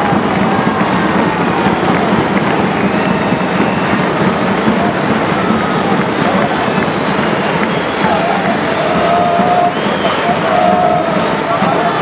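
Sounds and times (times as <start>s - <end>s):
crowd applauding: 0.0s - 12.0s
crowd cheering: 0.0s - 12.0s.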